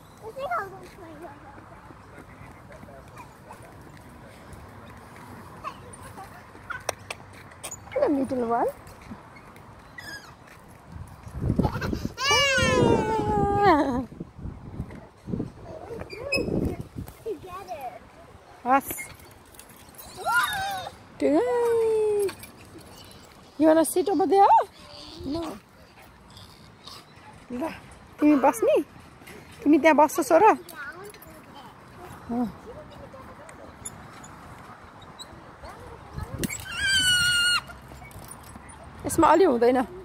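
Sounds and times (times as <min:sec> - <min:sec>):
child squealing: 0:11.8 - 0:13.5, 0:20.1 - 0:21.0, 0:36.4 - 0:37.8.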